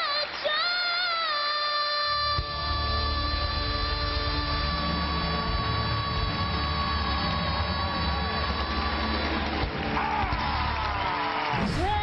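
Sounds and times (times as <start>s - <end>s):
girl singing pop: 0.0s - 9.4s.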